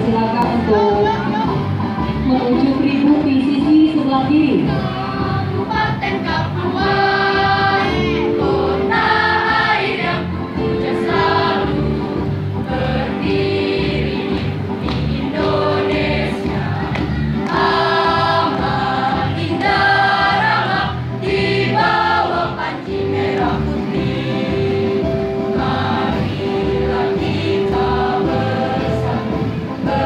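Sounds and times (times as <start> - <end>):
choir singing a march: 4.6 - 30.0.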